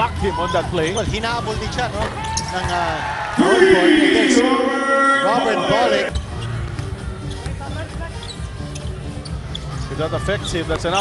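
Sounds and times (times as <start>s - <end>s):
arena crowd noise: 0.0s - 11.0s
music playing: 3.3s - 11.0s.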